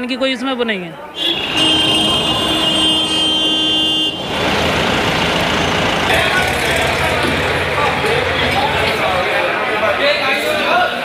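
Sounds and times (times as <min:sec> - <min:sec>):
road noise: 0:00.0 - 0:11.0
truck horn long note: 0:01.2 - 0:04.8
truck engine: 0:01.2 - 0:10.6.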